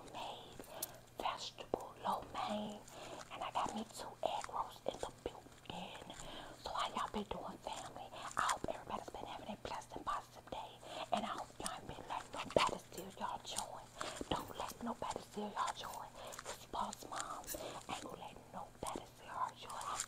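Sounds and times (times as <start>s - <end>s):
woman whispering: 0.0s - 20.0s.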